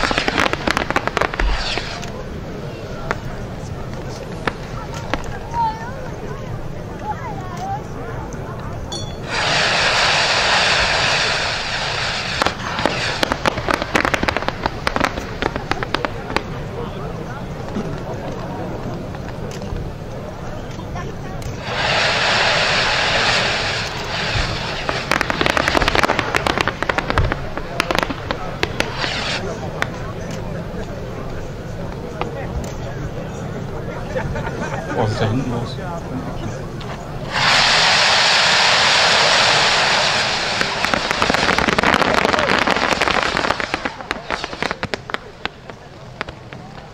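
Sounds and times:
fireworks launching with rushing hiss: 0:00.0 - 0:08.0, 0:09.2 - 0:19.9, 0:21.4 - 0:30.5, 0:36.9 - 0:46.9
fireworks crackling and popping: 0:00.0 - 0:32.8, 0:36.7 - 0:46.9.

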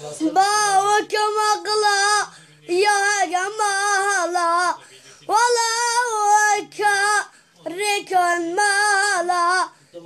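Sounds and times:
boy singing: 0:00.1 - 0:09.8.

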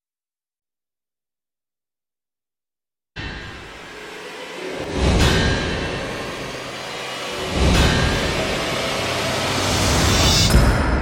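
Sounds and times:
dark film trailer music: 0:03.2 - 0:11.0
deep booming hits: 0:03.2 - 0:11.0
whooshes: 0:03.6 - 0:11.0.

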